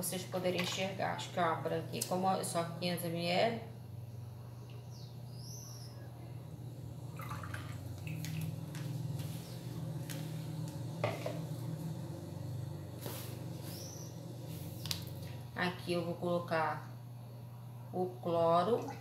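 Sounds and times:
low hum: 2.5s - 19.0s.

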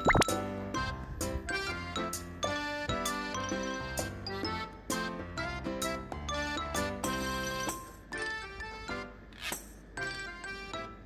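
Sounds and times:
rising plop sound effect: 0.0s - 0.4s
cute bell-like background music: 0.0s - 9.2s, 10.0s - 11.0s.

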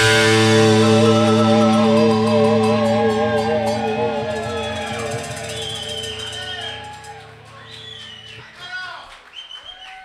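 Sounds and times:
high held tone: 0.0s - 8.4s
rock band closing chord: 0.0s - 8.4s.

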